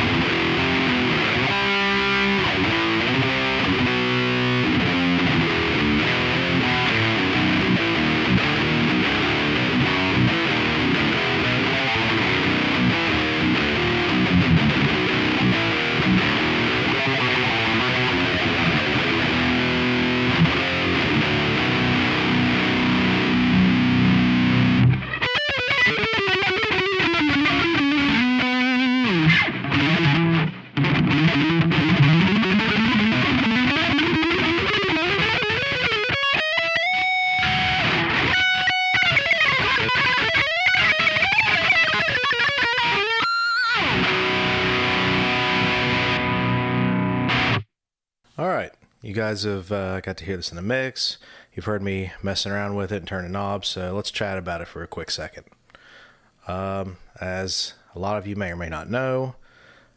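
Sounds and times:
distorted electric guitar: 0.0s - 47.7s.

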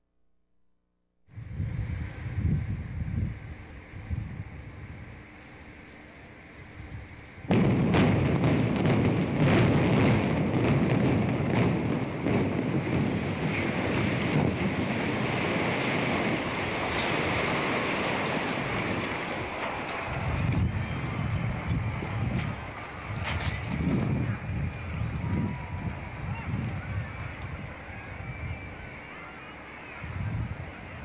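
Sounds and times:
wind hiss on microphone: 1.3s - 5.8s
deep rumble of building collapsing: 4.5s - 29.1s
demolition charges cracking: 5.6s - 29.1s.

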